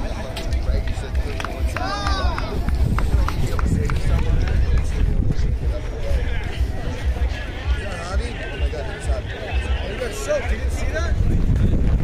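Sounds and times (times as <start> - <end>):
wind buffeting microphone: 0.0 - 8.2, 10.0 - 12.0
crowd chatter: 0.0 - 12.0.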